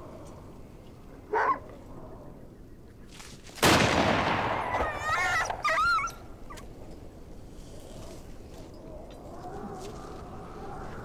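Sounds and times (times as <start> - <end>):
rifle shot with echo: 3.6 - 5.0
dog yelping and whimpering: 4.7 - 6.7.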